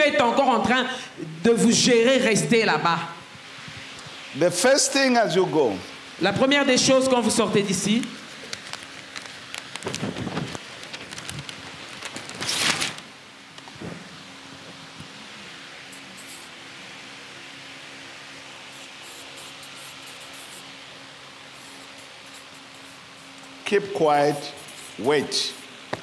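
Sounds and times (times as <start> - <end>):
paper crackling and rustling: 8.1 - 13.7
marker writing on paper: 18.8 - 20.7, 21.6 - 25.7.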